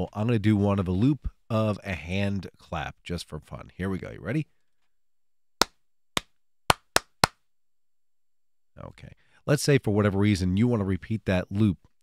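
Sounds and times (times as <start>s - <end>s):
hand claps: 5.6s - 7.4s.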